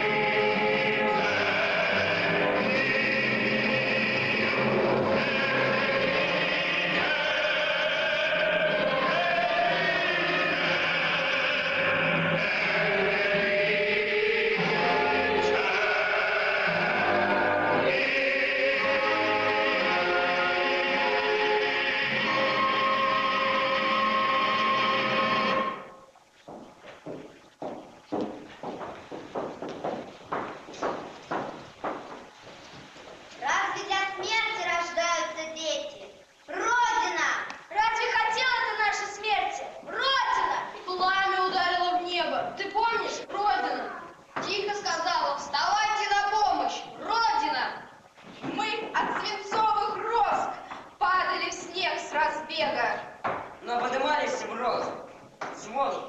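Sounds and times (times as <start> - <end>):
choir singing held chords: 0.0 - 26.0
soft evenly spaced thuds: 26.1 - 34.3, 53.2 - 53.7.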